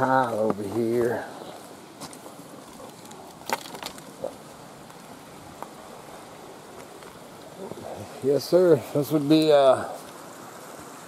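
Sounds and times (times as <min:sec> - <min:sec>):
creek rushing: 0:00.0 - 0:11.0.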